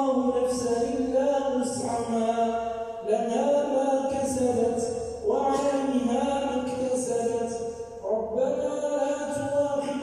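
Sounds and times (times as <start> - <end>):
man chanting recitation: 0.0 - 10.0.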